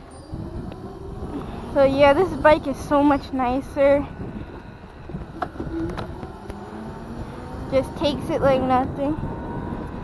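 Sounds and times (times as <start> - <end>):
electric motor whine: 0.0 - 10.0
wind: 0.0 - 10.0.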